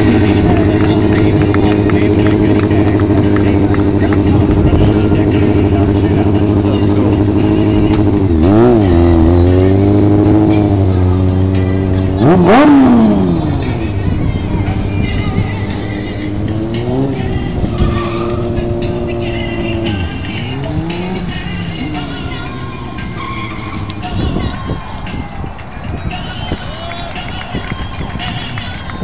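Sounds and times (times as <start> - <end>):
motorcycle engines revving: 0.0 - 29.0.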